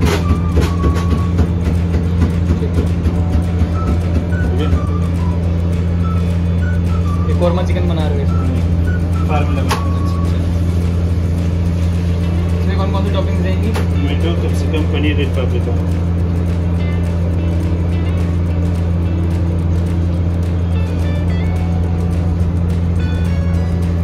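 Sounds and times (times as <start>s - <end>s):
low machine hum: 0.0s - 24.0s.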